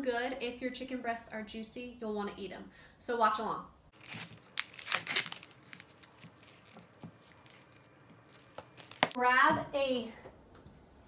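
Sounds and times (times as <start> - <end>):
crinkling handling sounds: 3.9 - 9.2.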